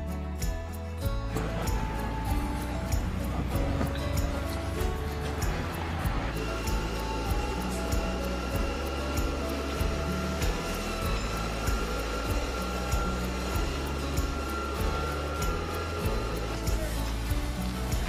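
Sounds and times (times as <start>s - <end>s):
low bass notes: 0.0s - 18.0s
ticking percussion: 0.0s - 18.0s.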